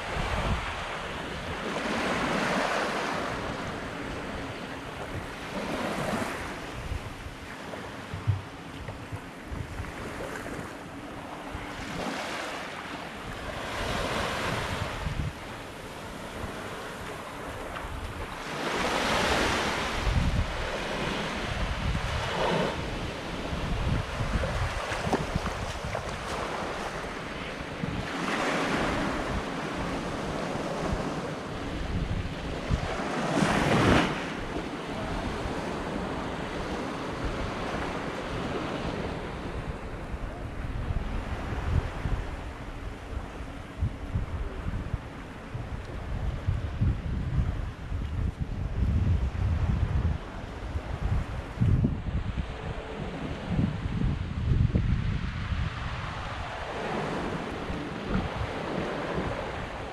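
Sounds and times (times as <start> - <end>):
small waves washing onto sand: 0.0 - 59.9
wind rumbling on microphone: 0.0 - 59.9.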